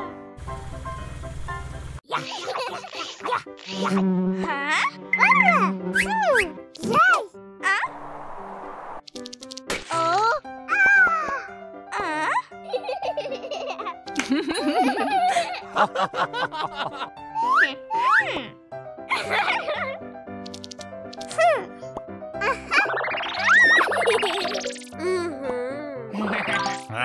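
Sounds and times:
soft background music: 0.1 - 27.0
cartoon child giggling: 2.1 - 4.0, 19.1 - 20.0, 22.4 - 26.9
cartoon engine putter: 20.5 - 21.5.

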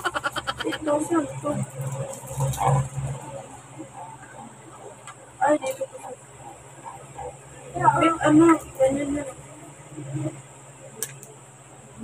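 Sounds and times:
person speaking: 0.0 - 1.6
steady low hum: 0.0 - 12.0.

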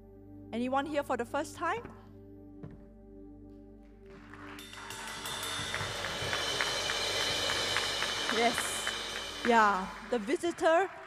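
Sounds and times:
soft background music: 0.0 - 11.0
congregation applauding: 4.0 - 11.0.

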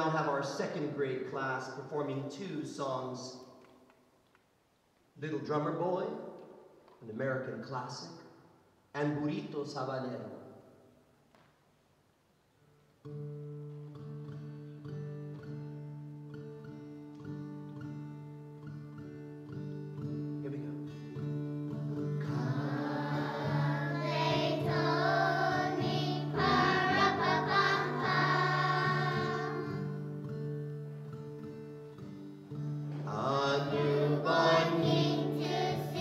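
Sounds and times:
children's choir singing: 22.2 - 30.1, 33.0 - 36.0.

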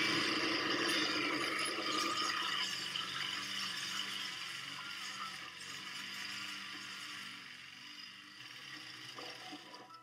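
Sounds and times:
petrol lawnmower running: 0.0 - 10.0.

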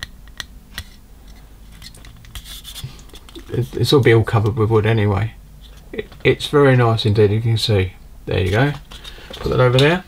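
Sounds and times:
plastic parts clicking and tapping: 8.4 - 10.0.

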